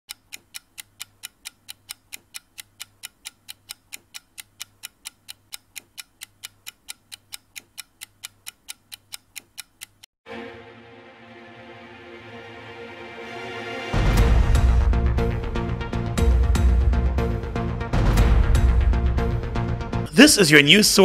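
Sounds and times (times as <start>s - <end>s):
rapid clock ticking: 0.1s - 10.1s.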